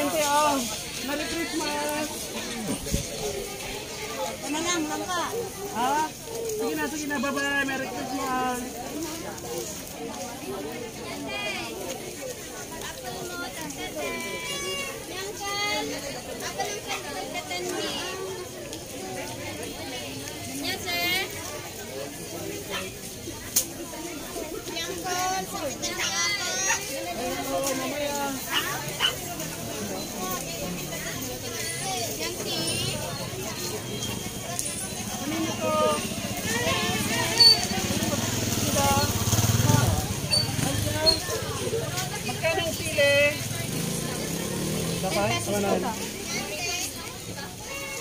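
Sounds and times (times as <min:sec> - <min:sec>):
voices talking and calling: 0:00.0 - 0:48.0.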